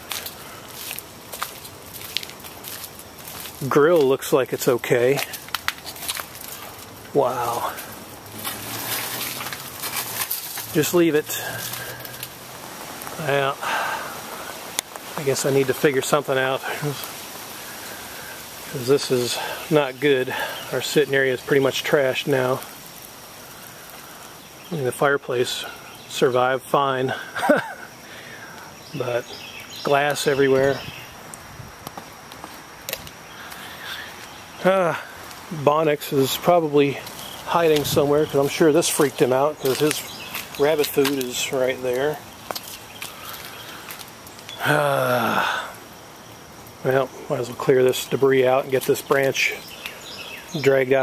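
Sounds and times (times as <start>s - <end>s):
dry leaves rustling: 0.0s - 46.2s, 46.8s - 51.0s.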